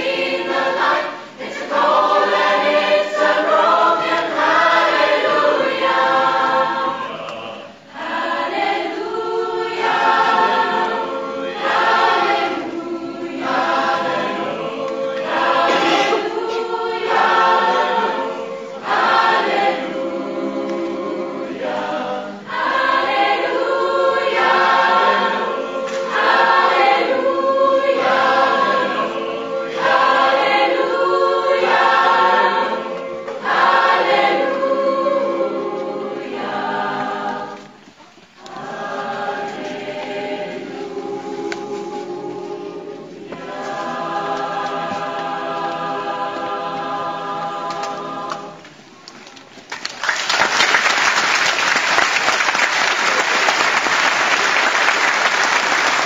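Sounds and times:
mixed choir singing: 0.0s - 48.9s.

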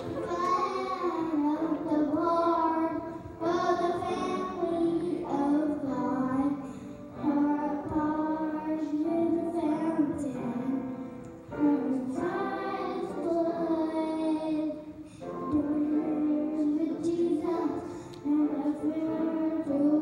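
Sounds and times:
boy singing gospel song: 0.0s - 20.0s.

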